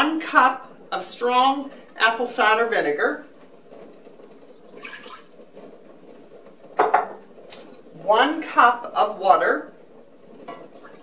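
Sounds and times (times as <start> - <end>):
liquid pouring into saucepan: 4.5 - 5.6
kitchenware clink: 6.8 - 7.2.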